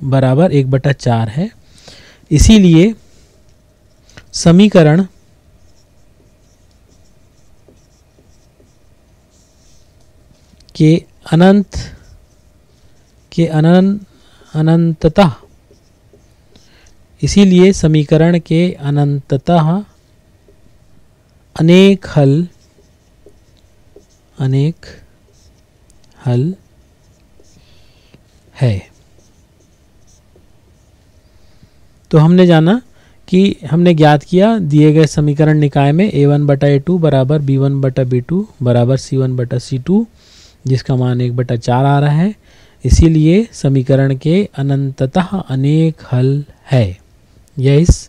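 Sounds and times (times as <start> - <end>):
pen scratching on paper: 5.5 - 10.6, 12.0 - 16.6, 21.9 - 25.7, 26.5 - 31.0.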